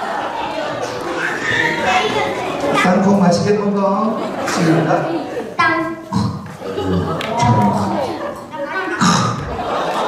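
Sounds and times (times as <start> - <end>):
audience chatter: 0.0 - 10.0
voices over a microphone: 1.3 - 9.8.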